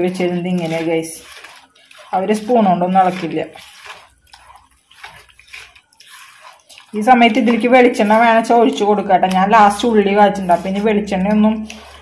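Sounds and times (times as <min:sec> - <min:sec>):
spoon stirring thick paste: 0:00.0 - 0:12.0.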